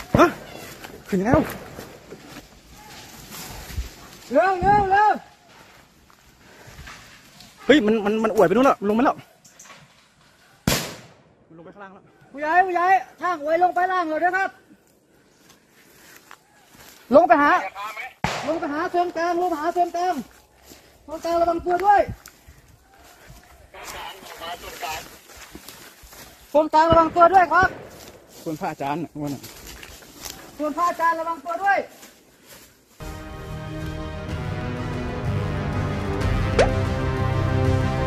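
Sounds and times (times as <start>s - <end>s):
footsteps in undergrowth: 0.0s - 10.6s, 12.9s - 34.3s
rustling of undergrowth: 0.0s - 11.1s, 12.1s - 34.9s
man shouting: 4.3s - 5.3s
firecracker bang: 10.6s - 11.4s, 18.2s - 18.8s, 36.5s - 36.9s.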